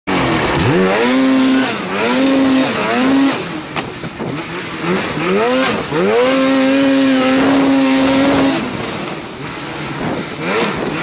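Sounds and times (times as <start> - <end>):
snowmobile engine revving: 0.1 - 11.0.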